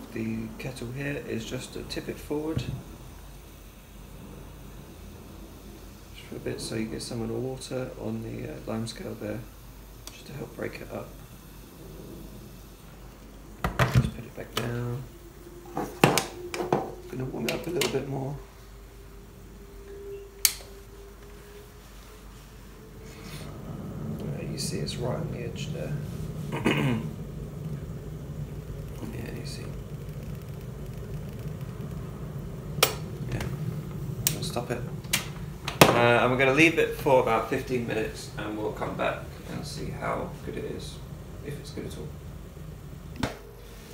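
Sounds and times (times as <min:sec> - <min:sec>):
electric kettle rumble and hiss: 0:00.0 - 0:43.9.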